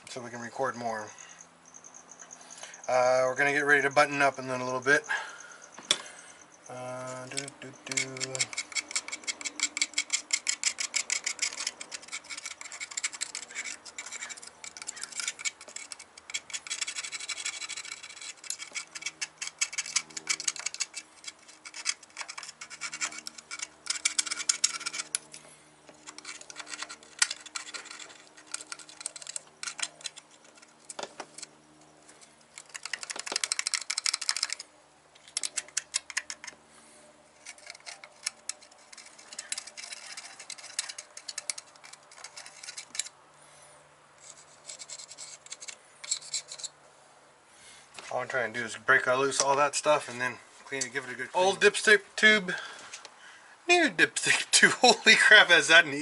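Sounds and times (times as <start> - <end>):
hand ratchet clicking: 7.2 - 25.4, 26.0 - 31.5, 32.5 - 34.6, 35.2 - 36.6, 37.4 - 43.1.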